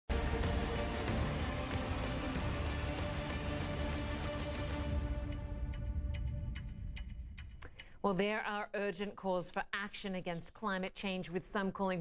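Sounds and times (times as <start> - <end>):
sharp ticks: 5.2 - 8.0.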